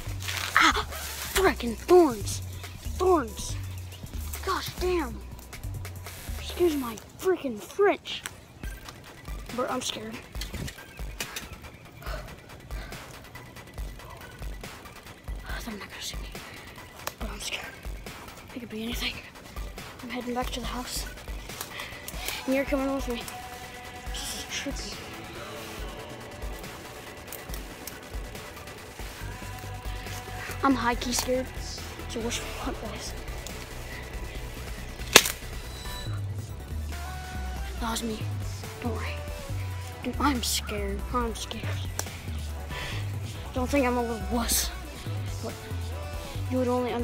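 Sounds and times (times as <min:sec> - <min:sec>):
footsteps through undergrowth: 0:00.0 - 0:03.0
background music: 0:00.0 - 0:47.0
sharp small clicks: 0:08.2 - 0:11.8, 0:16.3 - 0:17.2, 0:21.0 - 0:22.4, 0:26.6 - 0:31.6, 0:34.6 - 0:36.0, 0:41.8 - 0:42.5
sharp crack: 0:16.4 - 0:17.4, 0:21.1 - 0:22.4, 0:26.5 - 0:32.1, 0:33.0 - 0:35.7, 0:41.8 - 0:42.6.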